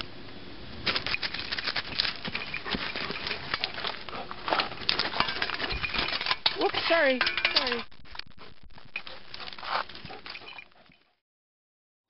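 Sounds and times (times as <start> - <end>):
dog paws scraping in dirt: 0.8 - 11.1.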